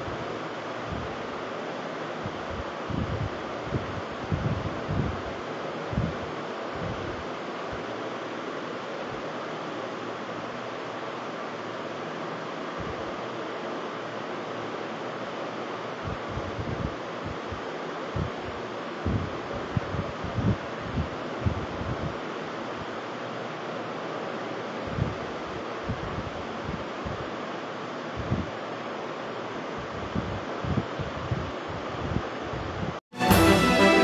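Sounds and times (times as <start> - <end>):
wind buffeting microphone: 2.4 - 5.3, 19.0 - 22.2.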